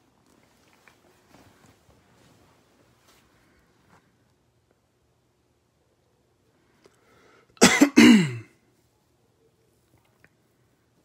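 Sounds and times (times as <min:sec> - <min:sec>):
man coughing: 0:07.6 - 0:08.6.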